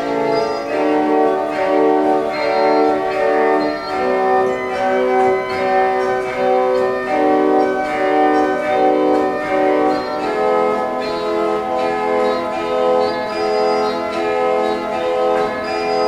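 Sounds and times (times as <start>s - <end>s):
pipe organ playing chords: 0.0s - 16.0s.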